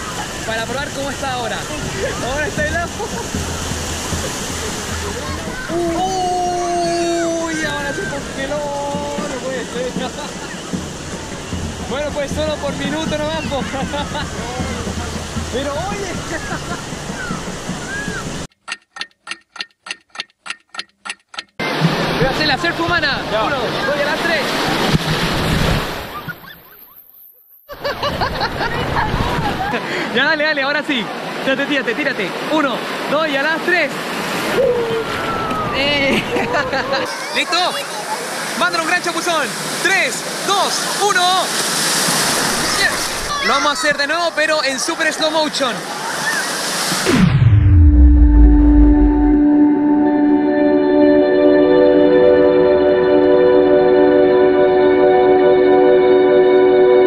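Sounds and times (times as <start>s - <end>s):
beach surf: 0.0s - 19.7s, 21.6s - 57.0s
clock ticking: 18.5s - 21.6s
deep low rumble: 47.1s - 49.6s
ambient music tone: 47.1s - 57.0s.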